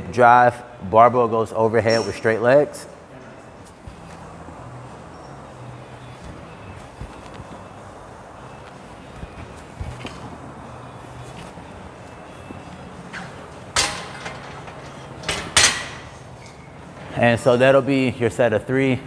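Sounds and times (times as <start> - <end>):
low background hum: 0.0 - 19.0
barbell clanking on metal stand: 13.1 - 16.7.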